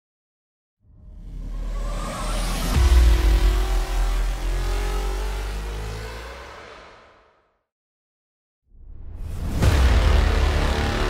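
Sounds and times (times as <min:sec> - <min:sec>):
rising hum: 0:00.9 - 0:06.9.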